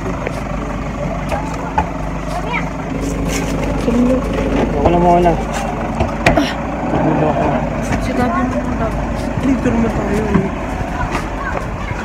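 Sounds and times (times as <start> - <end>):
faint voices: 0.0 - 12.0
vehicle engine idling: 0.0 - 12.0.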